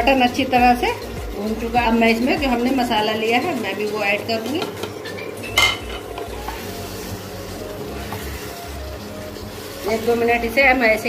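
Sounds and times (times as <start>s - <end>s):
faint music: 0.0s - 11.0s
meat sizzling in hot oil: 0.0s - 11.0s.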